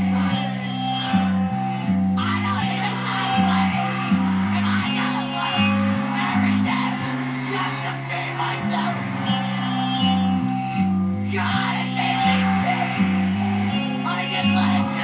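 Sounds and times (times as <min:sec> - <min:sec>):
background music with bass line: 0:00.0 - 0:15.0.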